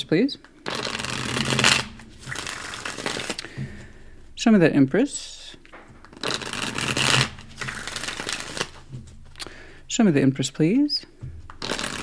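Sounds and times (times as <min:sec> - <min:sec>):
cards shuffled by hand: 0:00.4 - 0:03.6, 0:06.0 - 0:09.5, 0:11.3 - 0:12.0
cards tapping: 0:00.4 - 0:04.3, 0:05.6 - 0:09.8, 0:10.8 - 0:12.0.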